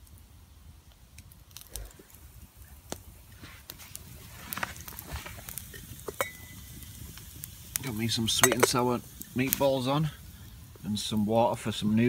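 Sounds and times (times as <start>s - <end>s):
campfire crackling and popping: 0.0s - 12.0s.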